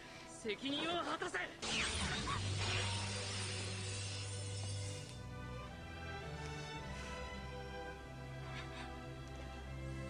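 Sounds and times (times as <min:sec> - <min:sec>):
film score: 0:00.0 - 0:10.0.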